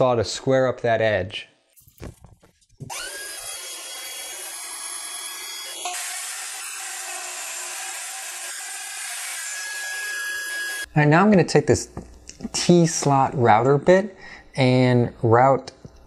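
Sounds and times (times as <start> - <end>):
table saw whining: 2.9 - 10.9.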